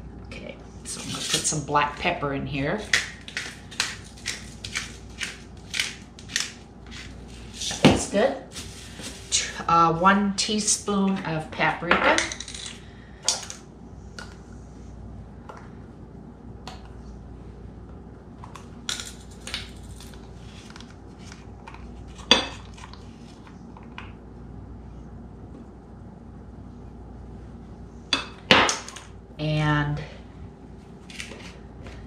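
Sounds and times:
low steady hum: 0.0s - 32.0s.

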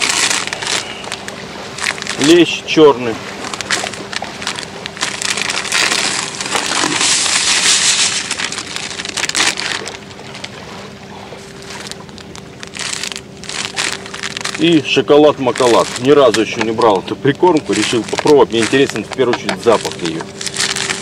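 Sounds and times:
plastic packet rustling and crinkling: 0.0s - 2.4s, 3.4s - 10.5s, 11.4s - 21.0s.

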